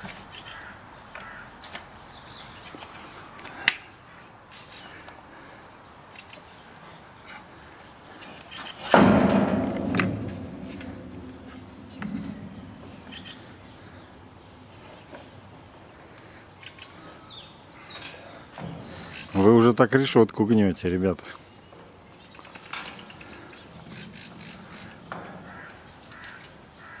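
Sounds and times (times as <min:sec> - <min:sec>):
bird cawing: 0:00.3 - 0:01.8, 0:11.7 - 0:14.5, 0:16.2 - 0:19.4, 0:23.0 - 0:27.0
branch knocking on metal fence: 0:08.9 - 0:13.6.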